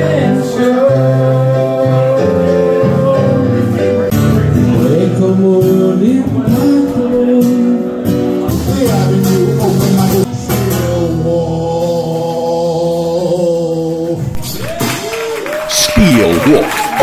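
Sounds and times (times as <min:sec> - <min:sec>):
acoustic guitar music: 0:00.0 - 0:14.6
man singing: 0:00.0 - 0:14.6, 0:15.7 - 0:16.6.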